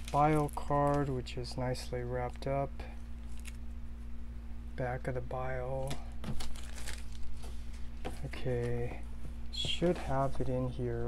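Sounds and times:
plastic wrapping crinkling: 0.0s - 1.2s, 3.2s - 3.7s, 6.2s - 7.9s.

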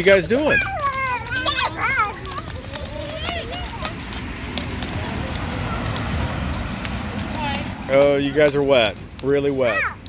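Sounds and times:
footsteps splashing in puddle: 0.0s - 10.0s
rushing background noise: 0.0s - 10.0s.

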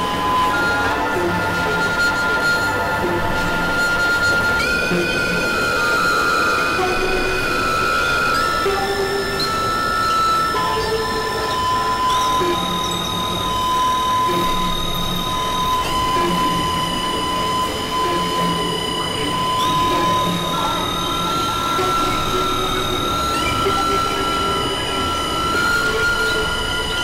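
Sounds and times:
sustained synthesizer tones: 0.0s - 27.0s.

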